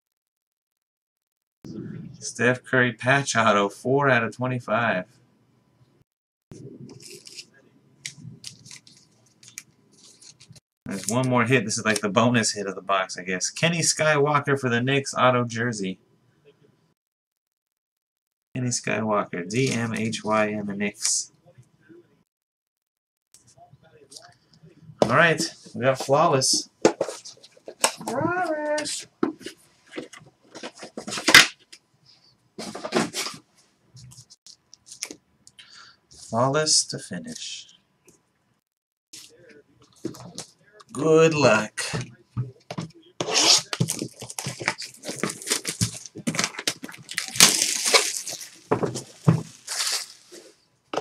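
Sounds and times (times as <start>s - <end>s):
packaging rustling scrape: 6.9s - 7.5s, 8.1s - 11.2s, 43.2s - 50.6s
trading cards swishing and scraping: 43.2s - 46.1s.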